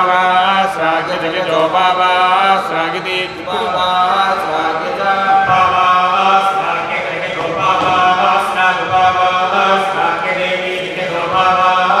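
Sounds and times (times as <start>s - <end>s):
men reciting chant: 0.0s - 12.0s.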